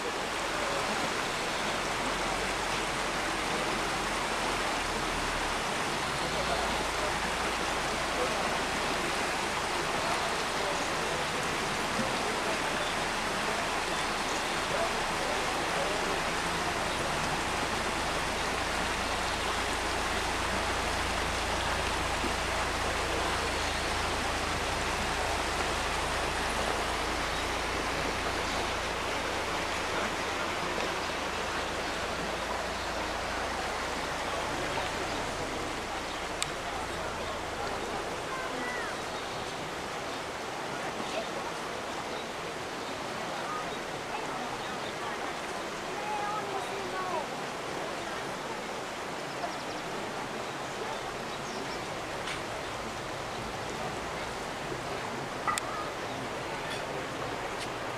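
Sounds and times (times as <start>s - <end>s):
shallow river rushing over rocks: 0.0s - 57.9s.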